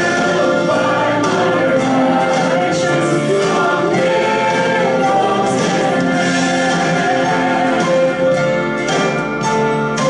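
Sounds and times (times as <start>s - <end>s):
choir singing held notes: 0.0s - 9.2s.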